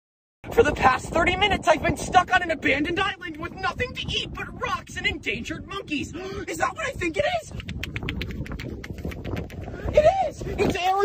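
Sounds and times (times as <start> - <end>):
wind on microphone: 0.4 - 11.0.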